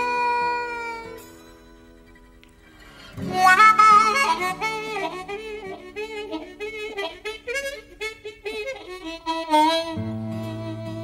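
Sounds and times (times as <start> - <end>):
harmonica melody with bent notes: 0.0 - 11.0.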